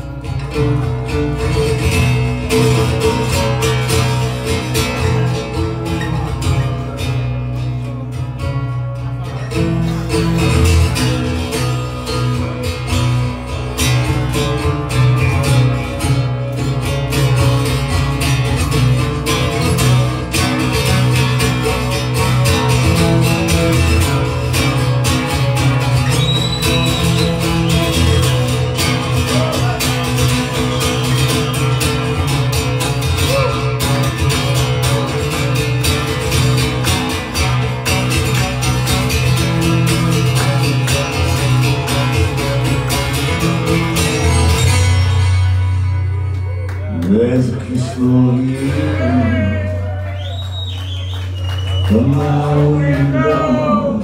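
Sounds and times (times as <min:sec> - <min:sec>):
acoustic guitar picked and strummed: 0:00.0 - 0:54.0.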